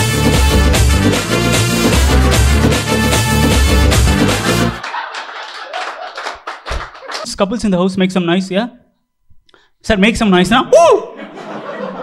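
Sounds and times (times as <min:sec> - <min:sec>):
audience clapping: 0:01.5 - 0:07.3.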